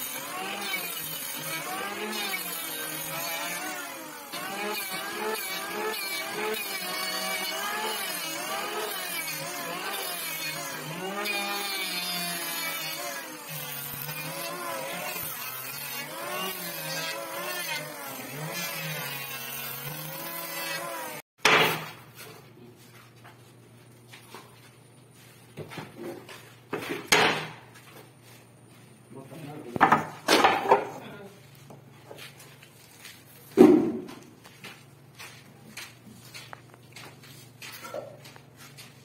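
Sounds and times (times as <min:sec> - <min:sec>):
electric hand planer cutting wood: 0:00.0 - 0:21.9.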